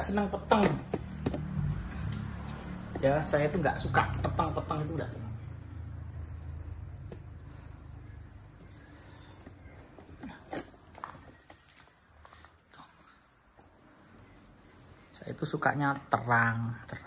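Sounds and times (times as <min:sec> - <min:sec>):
cricket high steady trill: 0:00.0 - 0:17.0
cricket pulsing call: 0:00.0 - 0:17.0.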